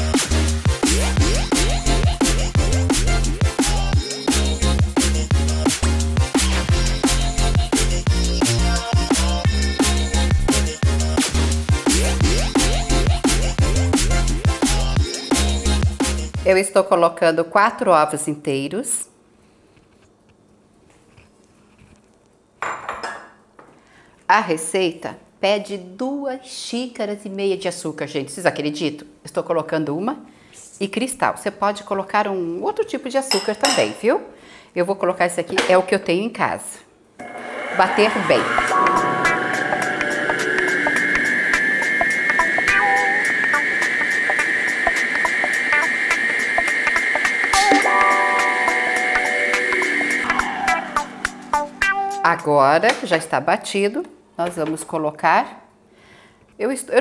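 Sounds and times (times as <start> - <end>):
glass bowl clattering on counter: 22.6 - 23.4
stand mixer motor whine: 37.2 - 47.8.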